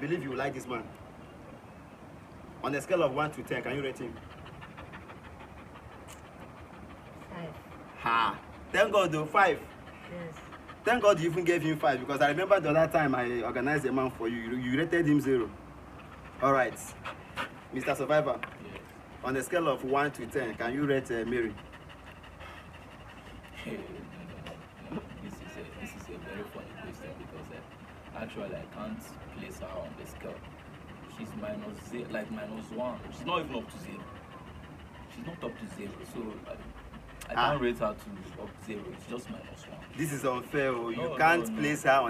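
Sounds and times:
dog panting: 0:00.0 - 0:42.0.

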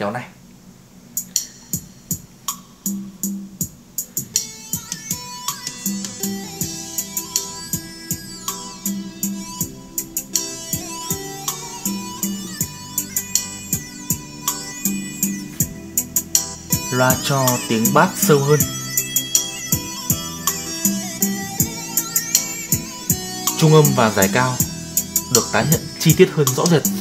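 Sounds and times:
plucked guitar over a beat: 0:04.8 - 0:27.0.

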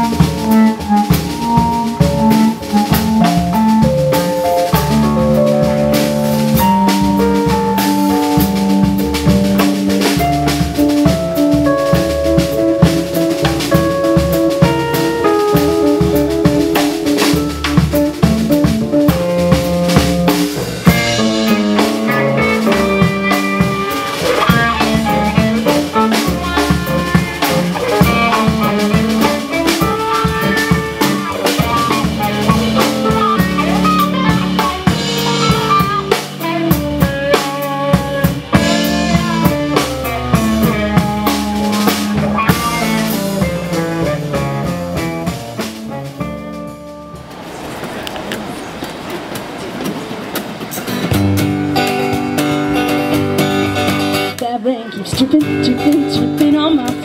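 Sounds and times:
live band playing: 0:00.0 - 0:57.0
acoustic guitar strumming: 0:20.2 - 0:47.5, 0:50.4 - 0:55.0.

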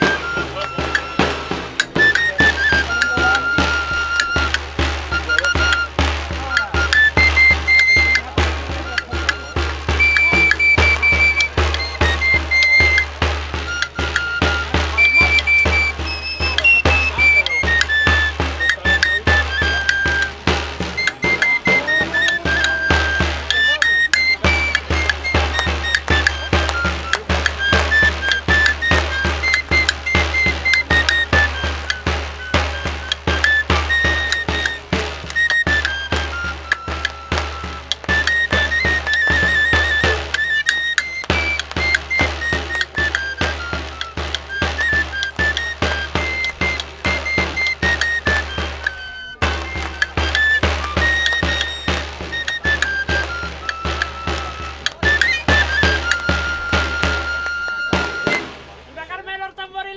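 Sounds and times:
high pipe melody: 0:00.0 - 0:59.1
steady drum beat: 0:00.0 - 0:59.6.

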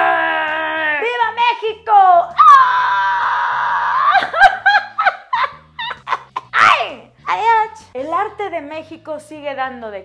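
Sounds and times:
woman screaming: 0:02.3 - 0:04.5, 0:06.5 - 0:07.0
woman laughing: 0:04.1 - 0:06.6.

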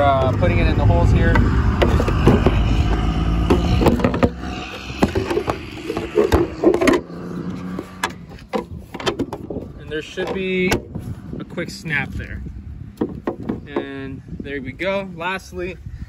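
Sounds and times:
low handling rumble on microphone: 0:00.0 - 0:14.8
plastic knocking against car panel: 0:13.0 - 0:13.9.

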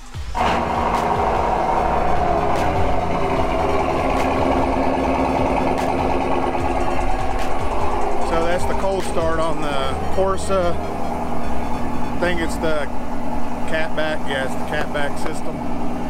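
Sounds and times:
engine starting and running: 0:00.0 - 0:16.0.

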